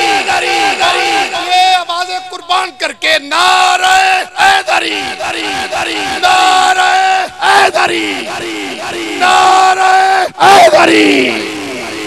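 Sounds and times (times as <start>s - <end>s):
crowd of men chanting: 0.0s - 1.7s, 3.4s - 12.0s.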